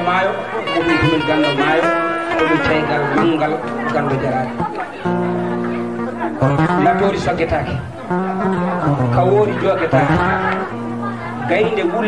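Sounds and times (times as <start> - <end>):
man speaking into microphone: 0.0 - 4.6, 6.5 - 7.9, 8.9 - 10.4, 11.4 - 12.0
voices chattering: 0.0 - 12.0.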